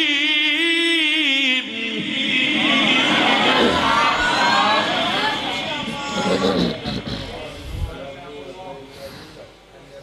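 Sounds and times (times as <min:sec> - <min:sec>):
man reciting melodically through pa: 0:00.0 - 0:03.6.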